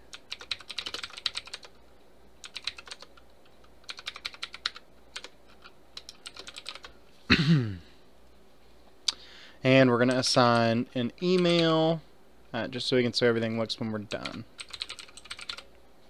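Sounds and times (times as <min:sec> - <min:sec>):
computer keyboard typing: 0:00.1 - 0:01.8, 0:02.4 - 0:06.9, 0:10.0 - 0:11.8, 0:14.1 - 0:15.7.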